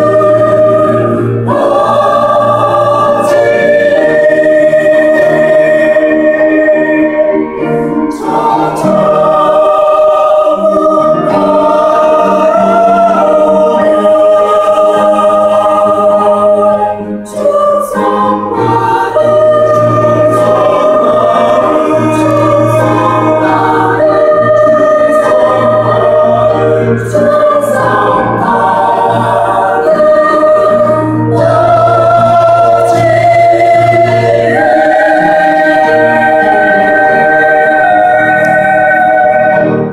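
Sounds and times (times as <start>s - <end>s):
church choir singing a hymn: 0.0s - 39.9s.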